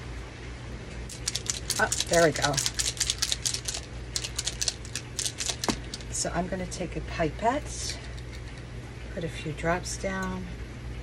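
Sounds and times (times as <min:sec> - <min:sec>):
plastic bottle rattling when shaken: 0:01.1 - 0:06.2.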